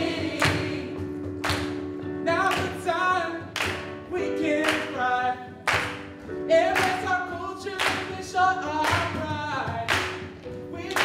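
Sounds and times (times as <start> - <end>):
group singing gospel song: 0.0 - 1.4
sharp hand claps: 0.2 - 2.9, 3.5 - 5.1, 5.7 - 7.1, 7.8 - 11.0.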